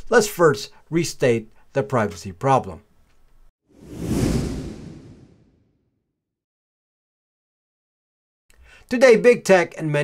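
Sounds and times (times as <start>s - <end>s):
whoosh with deep rumble: 3.8s - 5.8s.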